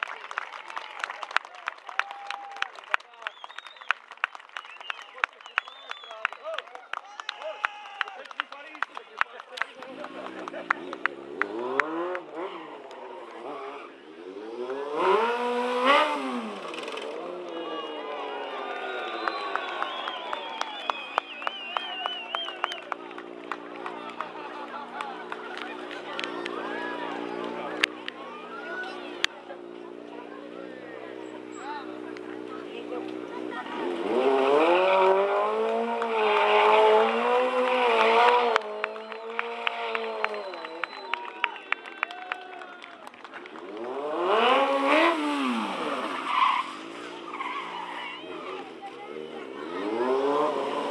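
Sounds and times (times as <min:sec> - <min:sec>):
motorcycle engine revving: 0:09.8 - 0:21.3, 0:22.9 - 0:41.0, 0:43.4 - 0:50.9.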